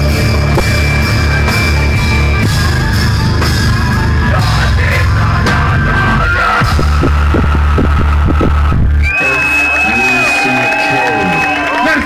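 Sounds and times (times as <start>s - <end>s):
live rock band playing: 0.0s - 11.3s
crowd cheering and yelling: 0.0s - 12.0s.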